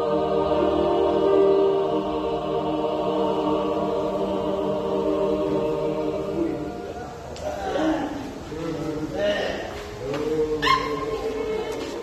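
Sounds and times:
people talking and calling out: 0:06.2 - 0:12.0.

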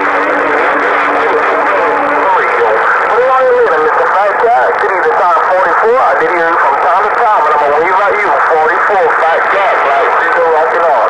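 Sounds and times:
low hum: 0:00.0 - 0:11.0
radio voice through speaker: 0:00.0 - 0:11.0.

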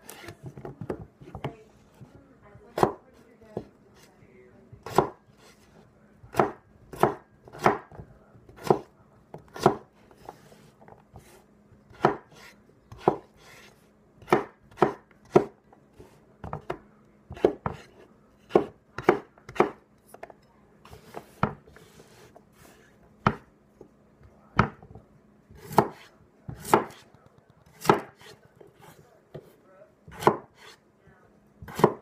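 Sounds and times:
knife chopping on wooden board: 0:02.7 - 0:03.0, 0:04.8 - 0:05.6, 0:06.3 - 0:20.3, 0:20.9 - 0:22.3, 0:23.2 - 0:23.5, 0:24.6 - 0:25.0, 0:25.6 - 0:27.1, 0:27.7 - 0:29.5, 0:30.1 - 0:30.8, 0:31.6 - 0:32.0.

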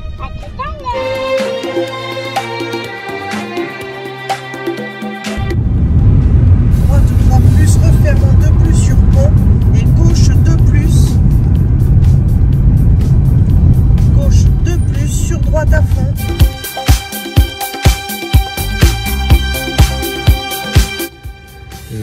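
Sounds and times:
car engine and road noise: 0:05.3 - 0:21.8.

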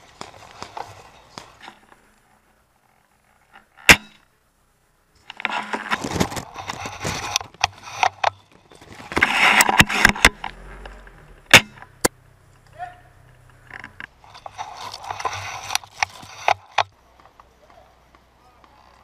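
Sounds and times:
leaves and brush rustling: 0:00.0 - 0:03.8, 0:05.1 - 0:19.0.

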